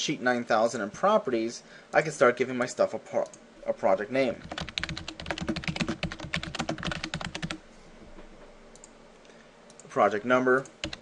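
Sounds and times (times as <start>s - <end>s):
computer keyboard typing: 4.4s - 7.6s, 10.7s - 11.0s.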